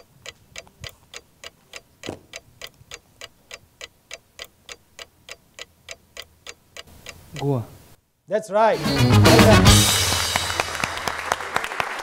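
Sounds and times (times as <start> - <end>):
countdown clock ticking: 0.0 - 7.6.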